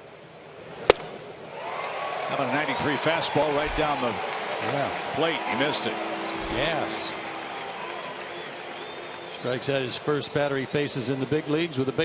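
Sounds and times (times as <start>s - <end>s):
ballpark crowd noise: 0.0s - 12.0s
baseball smacking into mitt: 0.9s - 1.1s
crowd cheering: 1.4s - 12.0s.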